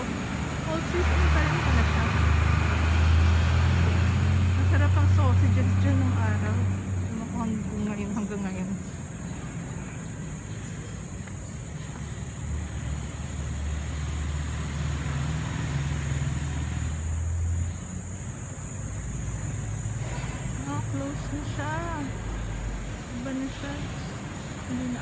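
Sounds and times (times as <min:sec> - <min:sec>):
vehicle passing with engine rumble: 0:00.0 - 0:25.0.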